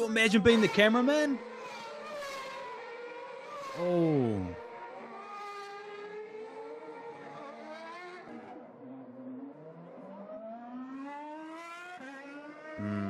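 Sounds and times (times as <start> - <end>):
racing car engines revving: 0.0 - 13.0.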